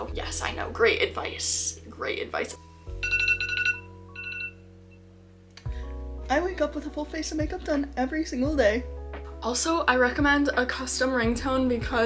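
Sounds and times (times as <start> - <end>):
soft background music: 0.0 - 12.0
smartphone alarm beeps: 3.0 - 4.6.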